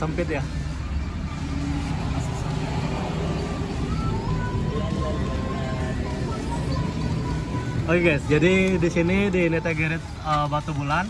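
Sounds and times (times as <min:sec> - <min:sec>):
faint music: 0:00.0 - 0:11.0
traffic rumble: 0:00.0 - 0:11.0.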